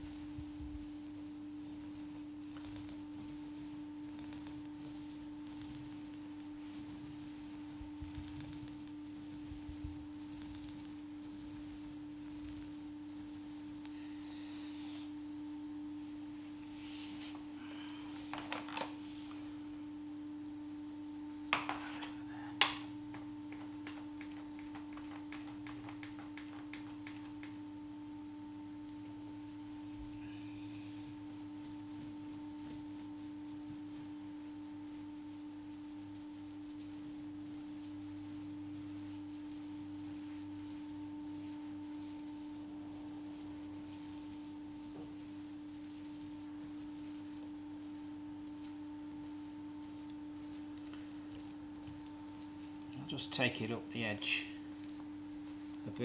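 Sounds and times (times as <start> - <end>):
paintbrush strokes: 0.0 - 19.6, 21.3 - 28.2, 28.8 - 56.0
steady one-pitched hum: 0.0 - 56.0.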